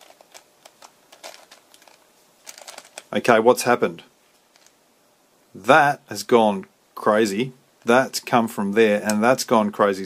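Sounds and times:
puzzle pieces clicking: 0.0s - 3.1s.

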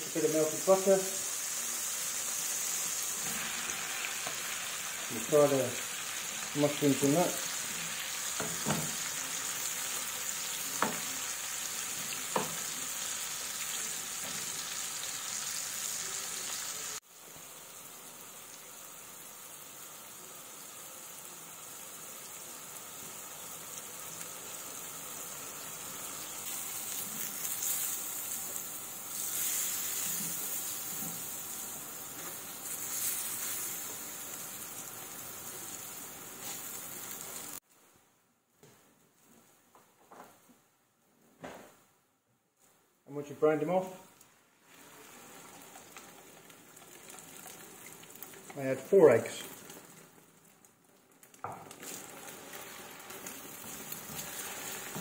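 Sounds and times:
mushrooms sizzling in butter: 0.0s - 37.6s, 43.5s - 55.0s.

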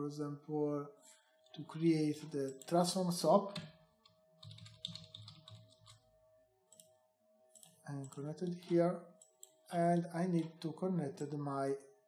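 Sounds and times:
faint steady hum: 0.0s - 12.0s
keyboard typing: 4.4s - 6.0s.

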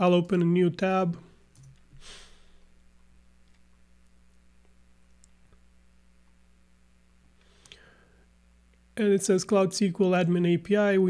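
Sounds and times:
short breath: 1.9s - 2.6s, 7.4s - 8.3s.

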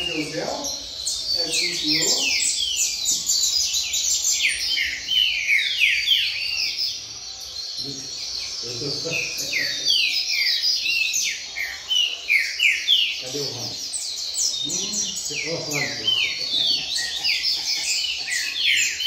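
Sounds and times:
songbirds whistling chorus: 0.0s - 19.0s.

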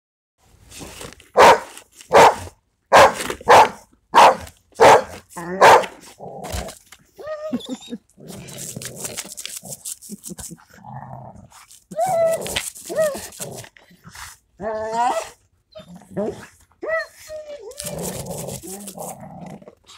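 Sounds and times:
dogs barking: 1.4s - 5.9s
dog growling: 17.7s - 19.9s.

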